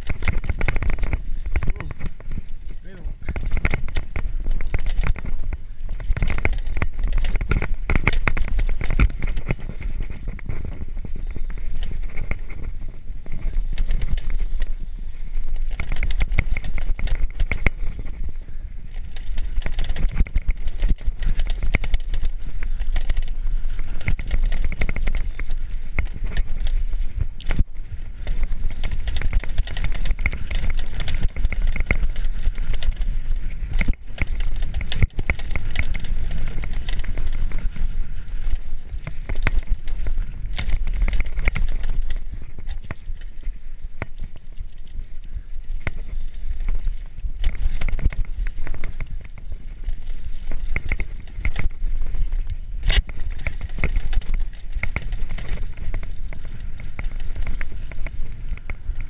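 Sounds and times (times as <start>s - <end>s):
bike rattling over bumps: 0.0s - 59.0s
tyre noise on dirt: 0.0s - 59.0s
wind rumble on microphone: 0.0s - 59.0s.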